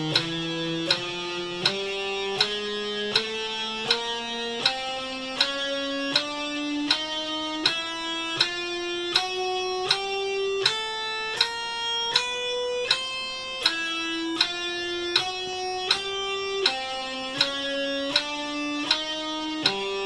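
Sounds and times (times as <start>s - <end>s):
electric guitar single notes: 0.0s - 20.0s.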